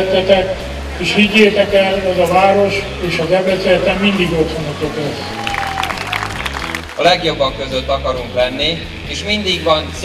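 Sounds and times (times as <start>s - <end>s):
music: 0.0s - 10.0s
audience clapping: 5.3s - 7.1s.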